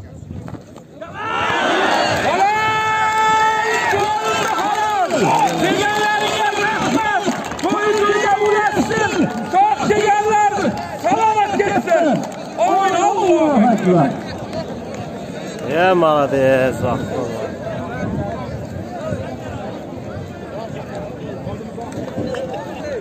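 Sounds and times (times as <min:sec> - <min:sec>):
faint crowd murmur: 0:00.0 - 0:23.0.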